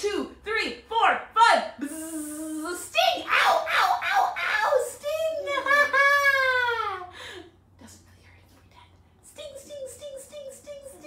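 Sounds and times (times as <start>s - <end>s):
woman's playful voice: 0.0s - 7.1s, 9.2s - 11.0s
small child's voice: 9.3s - 11.0s.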